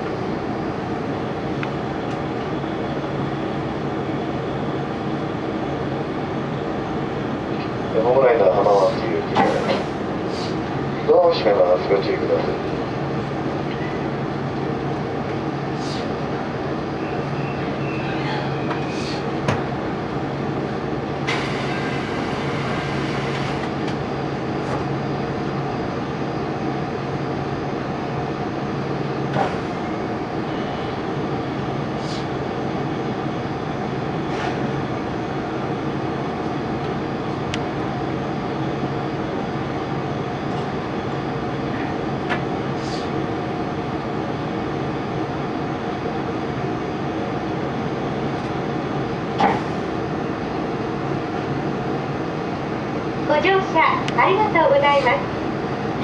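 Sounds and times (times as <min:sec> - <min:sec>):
train interior hum and rumble: 0:00.0 - 0:56.0.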